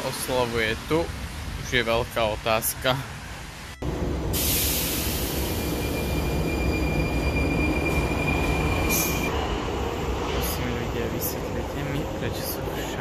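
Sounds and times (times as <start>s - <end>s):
train rushing noise: 0.0s - 13.0s
high-pitched train squeal: 4.5s - 9.6s.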